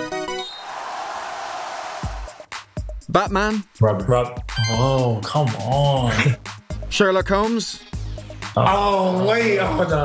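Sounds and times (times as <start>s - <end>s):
chiptune jingle: 4.5s - 5.2s.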